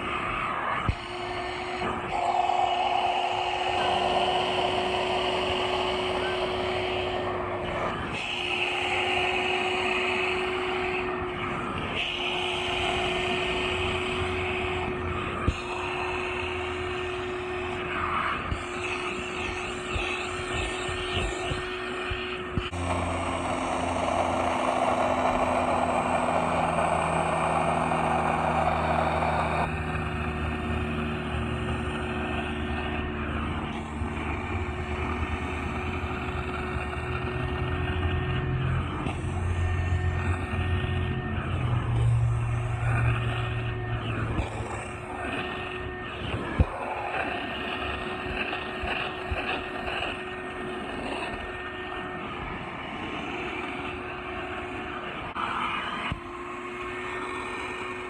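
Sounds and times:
shop vac motor humming: 0.0 - 58.0
upholstery tool sucking air and water: 0.0 - 58.0.

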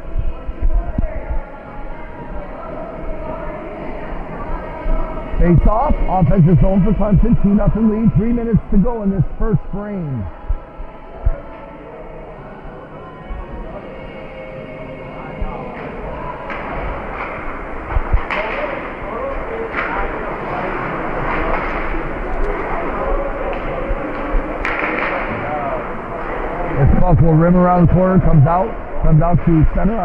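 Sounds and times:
skating and rink noise: 0.0 - 30.0
voices in arena: 0.0 - 30.0
sticks and puck hitting boards: 24.6 - 25.4.

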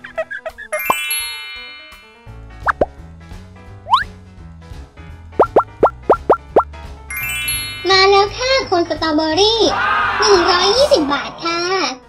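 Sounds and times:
light children's music: 0.0 - 12.0
rising run of bright notes: 0.8 - 2.8, 7.1 - 9.0
cartoon plops: 2.6 - 2.9, 3.9 - 4.1, 5.4 - 6.7.

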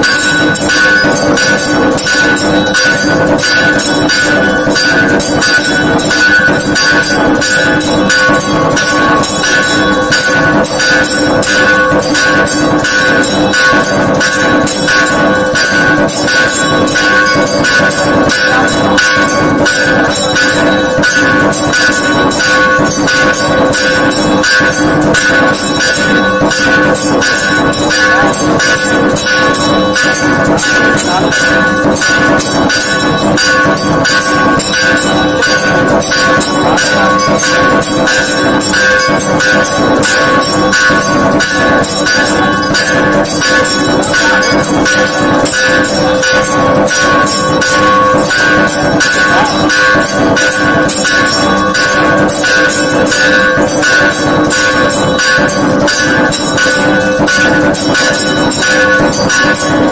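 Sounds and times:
bells rung rapidly: 0.0 - 59.9.

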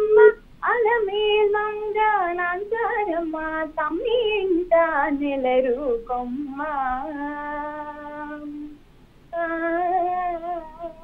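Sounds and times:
woman singing solo: 0.0 - 11.0.

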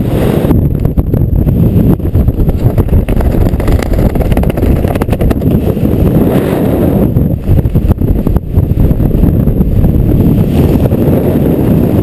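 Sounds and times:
wind buffeting microphone: 0.0 - 12.0
short crackles: 2.4 - 6.6.

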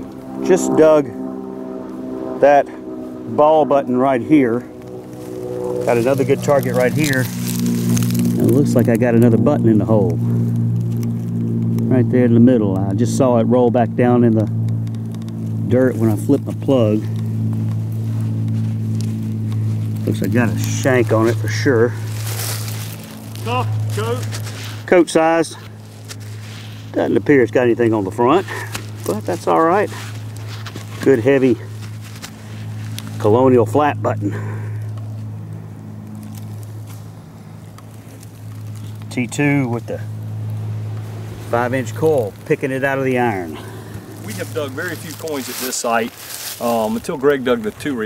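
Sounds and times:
steady low hum: 0.0 - 48.0.

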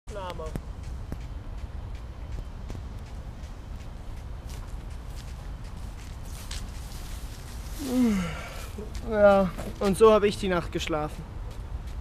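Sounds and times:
steady low rumble: 0.1 - 12.0
footsteps on dry leaves: 2.8 - 10.0.

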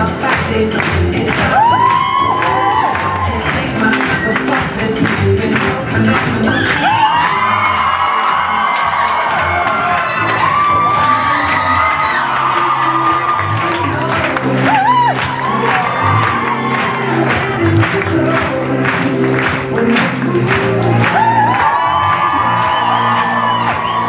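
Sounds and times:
loud dance music: 0.0 - 24.0
crowd cheering and whooping: 1.4 - 4.4, 6.4 - 18.4, 20.4 - 24.0.

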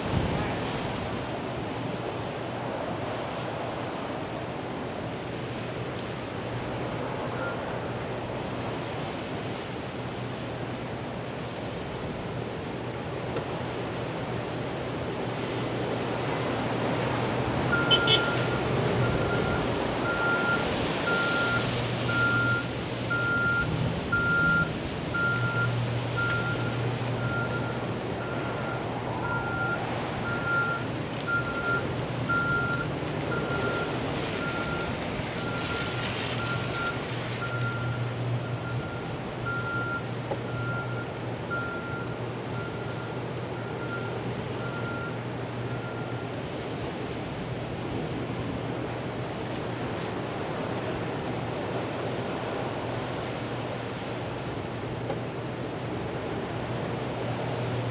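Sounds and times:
storm wind and rain: 0.0 - 57.9
vehicle reversing alarm beeping: 7.4 - 7.6, 17.7 - 46.4.

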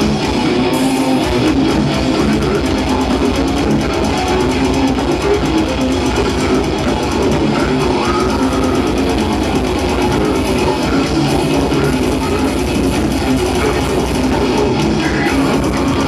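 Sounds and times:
bass guitar: 0.0 - 16.0
distorted electric guitar: 0.0 - 16.0
very fast drumming: 0.0 - 16.0.

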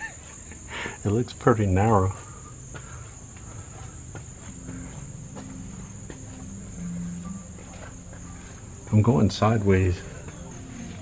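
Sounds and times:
faint footsteps on path: 0.0 - 11.0
high-pitched insect trill: 0.0 - 11.0.

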